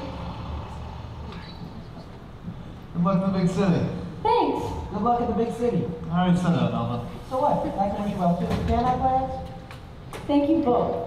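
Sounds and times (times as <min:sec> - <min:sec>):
bus engine rumbling: 0:00.0 - 0:03.0.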